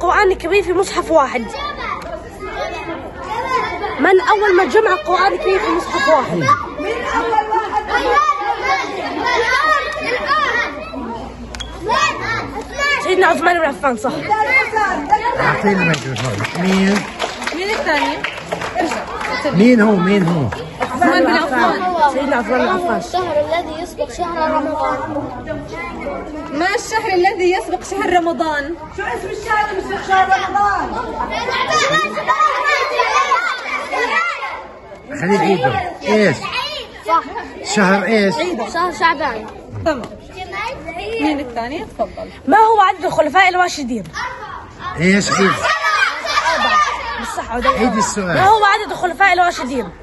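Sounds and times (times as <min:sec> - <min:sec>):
children chattering: 0:00.0 - 0:50.0.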